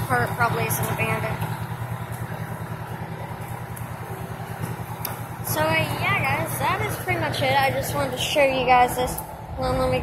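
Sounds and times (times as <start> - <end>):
diesel engines idling: 0.0 - 10.0.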